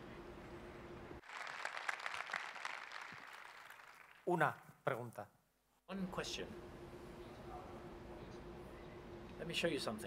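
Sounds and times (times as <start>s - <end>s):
steady hum: 0.0s - 1.5s, 5.3s - 10.0s
audience applauding: 1.2s - 4.6s.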